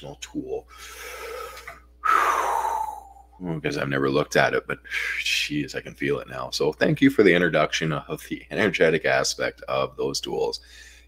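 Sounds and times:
man breathing in: 0.7s - 3.4s, 10.6s - 11.0s
man sighing: 0.8s - 3.4s.

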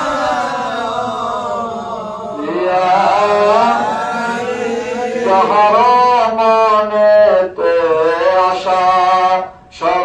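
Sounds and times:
man chanting through a microphone: 0.0s - 10.0s.

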